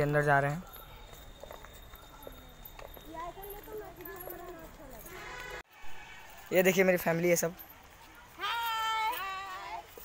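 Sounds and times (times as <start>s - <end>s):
footsteps on paved path: 0.0s - 10.0s.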